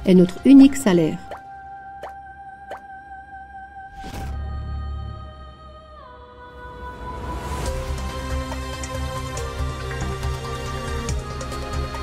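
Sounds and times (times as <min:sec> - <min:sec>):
background music tone: 0:00.0 - 0:12.0.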